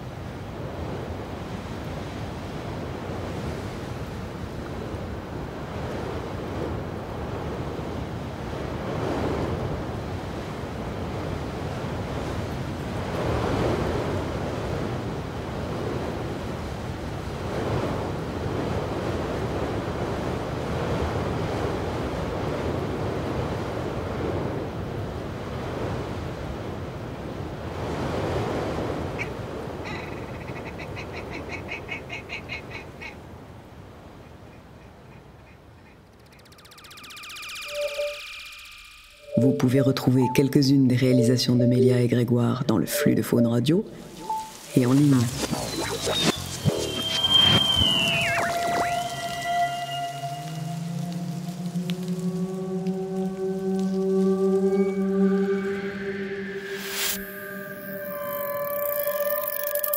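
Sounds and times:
sea waves breaking on shore: 0:00.0 - 0:35.6, 0:43.0 - 0:59.9
bird pulsed calls: 0:29.2 - 0:33.2, 0:34.2 - 0:41.9, 0:42.9 - 0:59.9
wind on microphone: 0:44.2 - 0:58.6.

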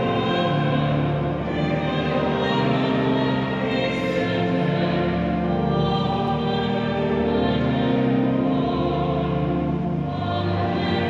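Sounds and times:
choir singing sacred music: 0:00.0 - 0:11.0.

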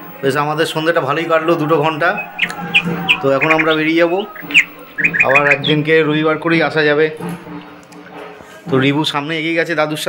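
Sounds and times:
bird chirping: 0:00.9 - 0:06.0.

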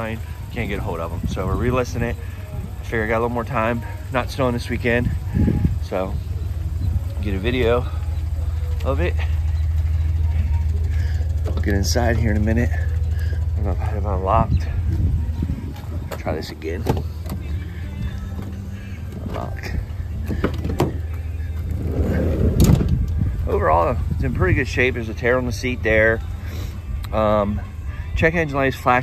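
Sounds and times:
loud low rumble: 0:00.0 - 0:25.5.

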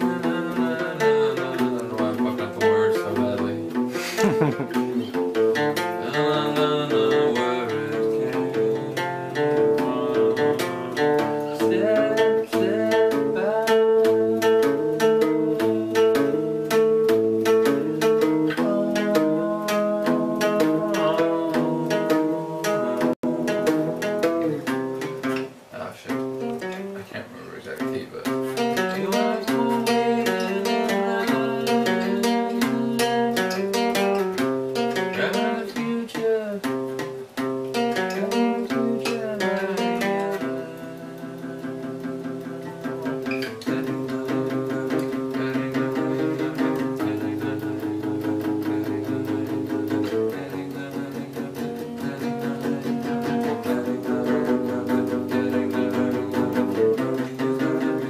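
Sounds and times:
person singing: 0:00.0 - 0:25.3, 0:28.3 - 0:58.0
acoustic guitar playing: 0:00.0 - 0:58.0.

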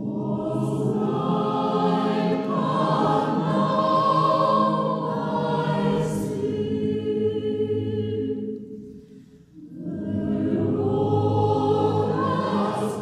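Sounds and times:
choir singing: 0:00.0 - 0:13.0.

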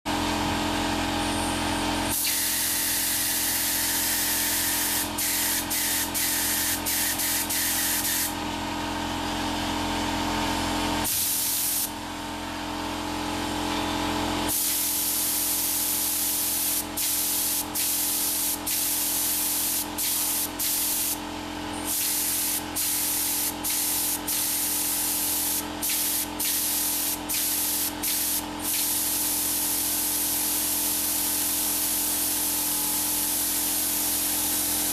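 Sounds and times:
spray gun hissing: 0:02.1 - 0:08.4, 0:11.0 - 0:11.9, 0:14.5 - 0:21.2, 0:21.9 - 0:34.9.

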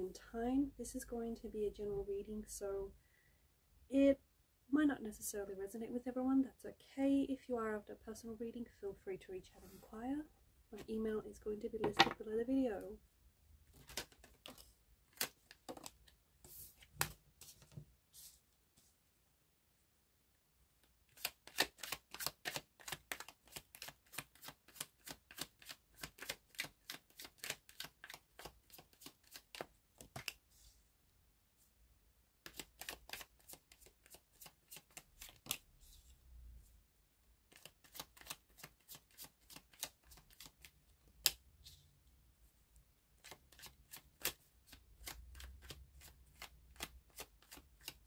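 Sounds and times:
cards being shuffled: 0:13.7 - 0:17.8, 0:21.1 - 0:30.4, 0:32.4 - 0:36.1, 0:37.5 - 0:41.4.

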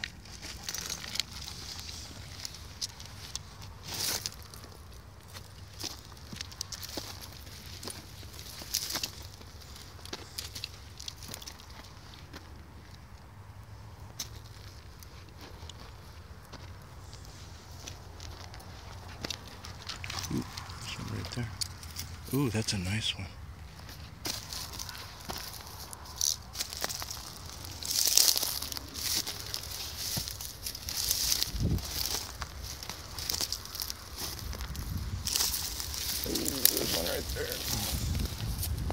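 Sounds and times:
footsteps on gravel: 0:00.0 - 0:13.1, 0:14.1 - 0:23.0, 0:23.6 - 0:38.9
steady low rumble: 0:15.6 - 0:38.9.

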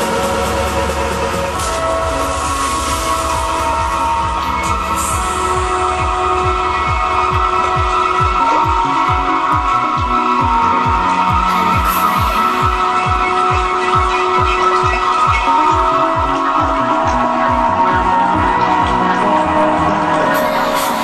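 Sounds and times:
trance music: 0:00.0 - 0:21.0.

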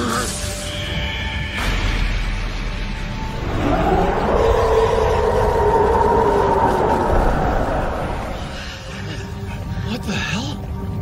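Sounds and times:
monster roar: 0:03.4 - 0:08.9.

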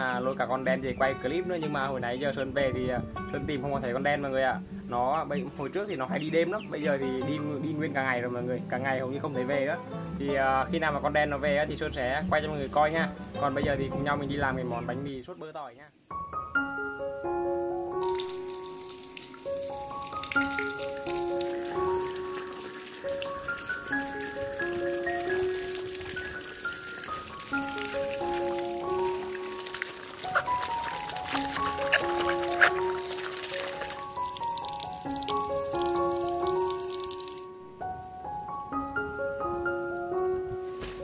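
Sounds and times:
light keyboard melody: 0:00.0 - 0:15.2, 0:16.1 - 0:41.0
water splashing on feet: 0:18.0 - 0:37.5.

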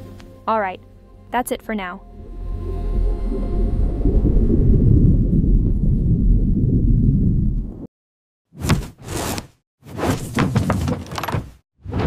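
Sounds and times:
deep rumbling drone: 0:00.4 - 0:07.9.

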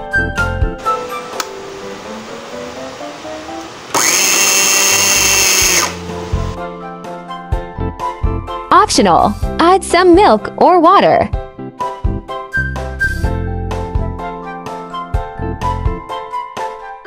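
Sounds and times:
electric blender motor whine: 0:03.9 - 0:06.6.

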